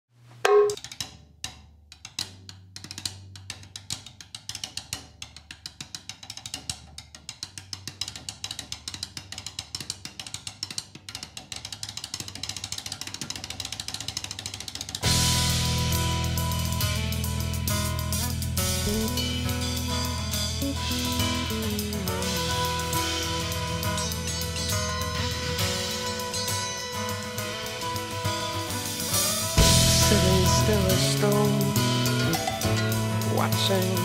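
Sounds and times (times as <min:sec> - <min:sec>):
drum hits: 0:00.5 - 0:00.8, 0:28.8 - 0:34.0
full band with drum kit: 0:15.0 - 0:34.0
low steady bass tone: 0:15.2 - 0:25.1, 0:29.6 - 0:34.0.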